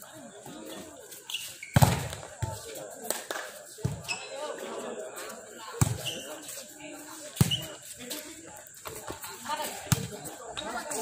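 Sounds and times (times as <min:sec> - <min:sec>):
voices of people: 0:00.0 - 0:11.0
volleyball being hit: 0:01.8 - 0:02.6.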